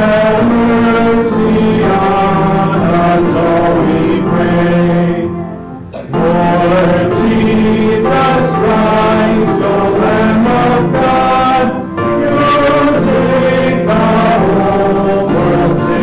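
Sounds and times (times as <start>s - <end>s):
congregation singing a chant: 0.0s - 16.0s.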